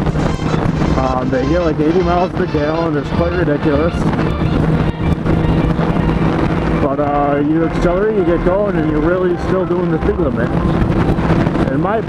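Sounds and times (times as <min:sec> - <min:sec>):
motorcycle engine droning: 0:00.0 - 0:12.0
wind rushing over microphone: 0:00.0 - 0:12.0.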